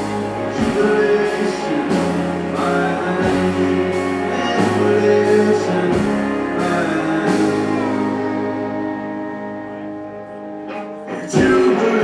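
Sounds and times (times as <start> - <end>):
electric guitar chord ringing: 0.0 - 12.0.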